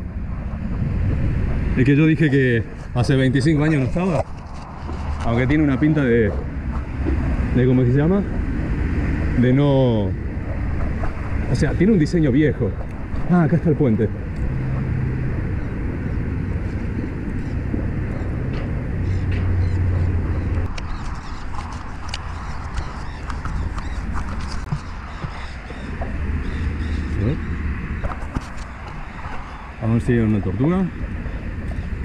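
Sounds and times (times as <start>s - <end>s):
bicycle road noise: 0.0s - 32.0s
car traffic hum: 0.0s - 32.0s
wind rushing: 0.0s - 32.0s.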